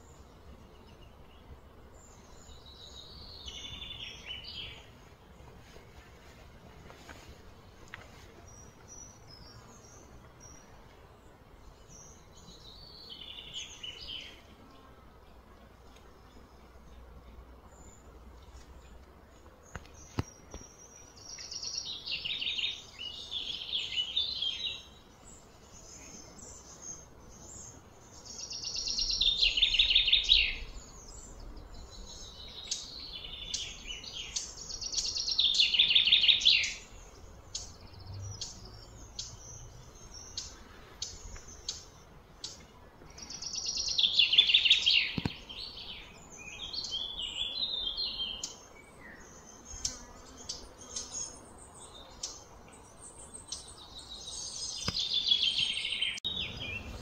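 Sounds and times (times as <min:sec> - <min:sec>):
songbird singing: 0:00.0 - 0:57.0.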